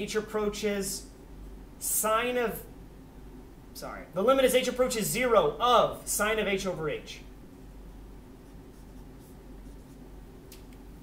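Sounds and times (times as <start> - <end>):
low steady hum: 0.0 - 11.0
marker scratching on whiteboard: 8.4 - 10.1.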